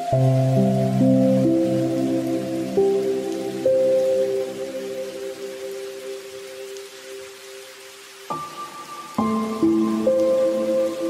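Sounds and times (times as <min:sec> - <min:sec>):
soft music of long held chords: 0:00.0 - 0:11.0
steady rain hiss: 0:00.0 - 0:11.0.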